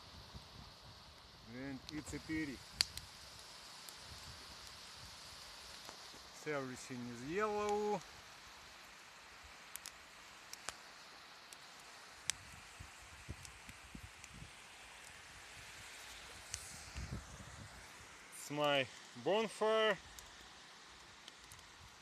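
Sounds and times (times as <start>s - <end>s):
wind hiss: 0.0s - 22.0s.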